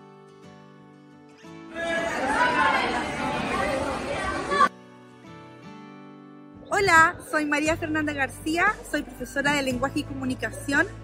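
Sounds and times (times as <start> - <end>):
chatter of several voices: 1.8 - 4.7.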